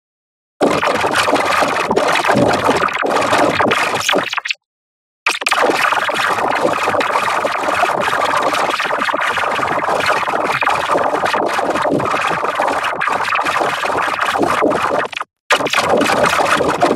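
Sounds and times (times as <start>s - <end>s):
distorted layered audio effects: 2.1s - 4.6s, 13.5s - 16.9s.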